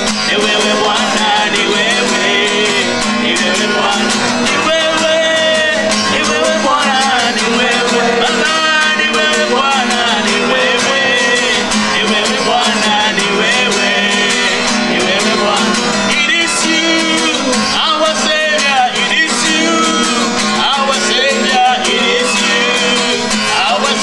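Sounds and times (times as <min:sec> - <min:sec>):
strummed guitar: 0:00.0 - 0:24.0
voices singing a worship song: 0:00.0 - 0:24.0.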